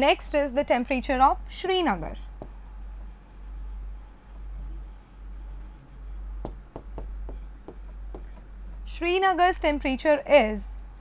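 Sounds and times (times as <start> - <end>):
scratchy writing on board: 2.2 - 8.8
writing tip tapping board: 2.4 - 3.2, 6.4 - 8.9.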